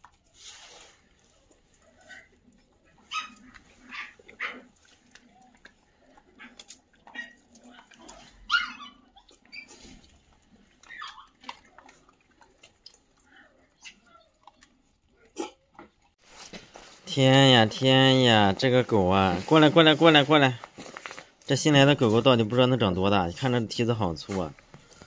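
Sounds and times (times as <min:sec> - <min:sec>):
dogs barking and yelping: 0:00.0 - 0:16.2
dogs eating dry kibble: 0:00.0 - 0:25.0.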